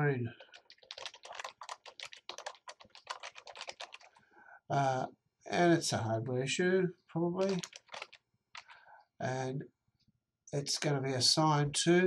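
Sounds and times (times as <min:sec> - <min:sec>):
computer keyboard typing: 0:00.4 - 0:04.2, 0:07.4 - 0:08.8.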